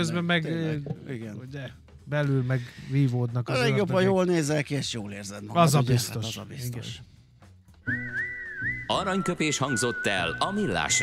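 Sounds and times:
whistled melody: 7.8s - 11.0s.

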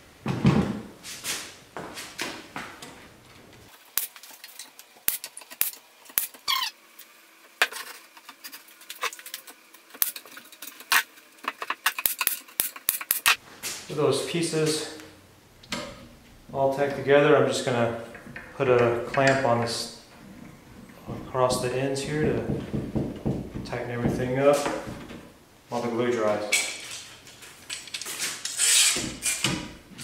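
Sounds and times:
falling squeak: 6.4s - 6.8s.

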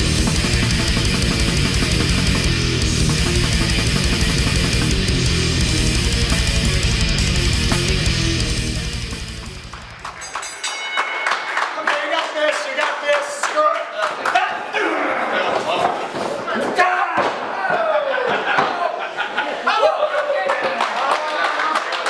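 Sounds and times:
heavy metal music: 0.0s - 10.4s
crowd voices: 9.8s - 22.0s.

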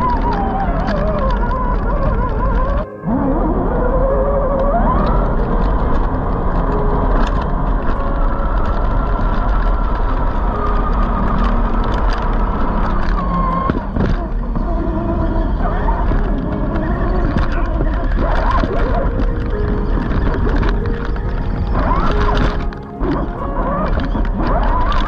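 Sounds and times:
tyres clicking on rocks: 0.0s - 2.9s, 4.2s - 25.0s
electric motor and gearbox whine: 0.0s - 25.0s.

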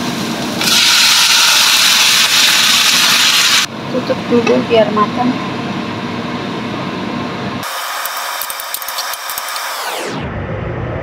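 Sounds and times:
vegetables sizzling: 0.0s - 3.7s
water hissing in hot wok: 0.0s - 3.7s.

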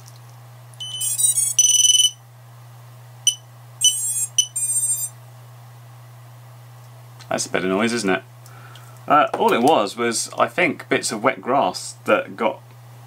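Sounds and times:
drone beeping: 0.8s - 2.2s, 3.3s - 5.1s.

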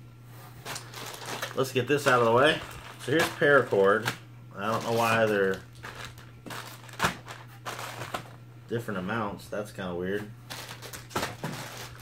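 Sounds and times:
plastic bags crinkling: 0.6s - 8.4s, 10.4s - 12.0s.

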